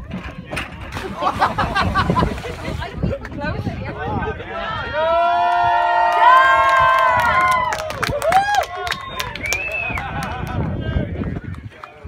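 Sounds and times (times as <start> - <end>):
people screaming and cheering: 4.2 - 11.4.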